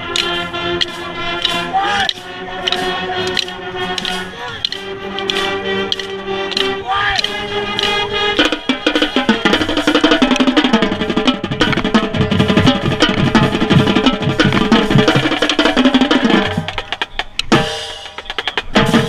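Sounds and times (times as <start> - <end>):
drumline drum strokes: 0.0 - 19.0
marching band playing: 0.0 - 19.0.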